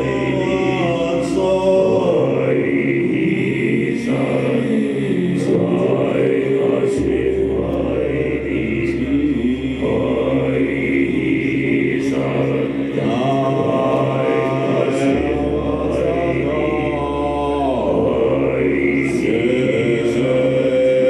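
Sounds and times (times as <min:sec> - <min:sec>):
low drone: 0:00.0 - 0:21.0
man chanting into a microphone: 0:00.0 - 0:21.0.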